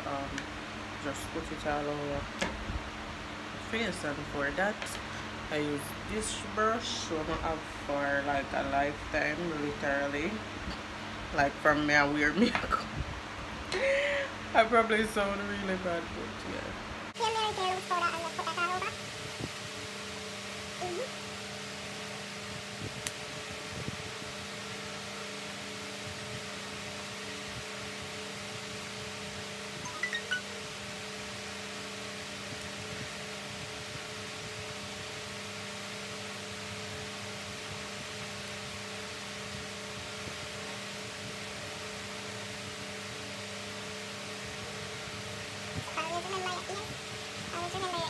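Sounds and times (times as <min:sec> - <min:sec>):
electric fan whirring: 0:00.0 - 0:48.0.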